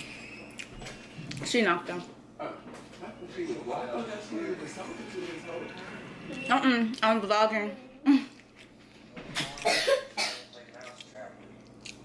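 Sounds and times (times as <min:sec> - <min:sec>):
woman coughing: 0:09.6 - 0:10.5.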